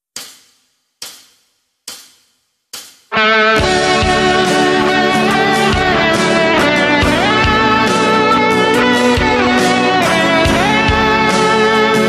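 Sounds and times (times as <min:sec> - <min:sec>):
hi-hat taps: 0:00.0 - 0:03.2
rock band with guitar: 0:03.1 - 0:12.0.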